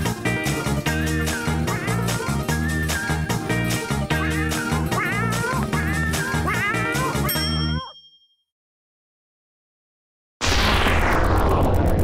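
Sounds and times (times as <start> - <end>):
bell-like ding: 7.3 - 8.5.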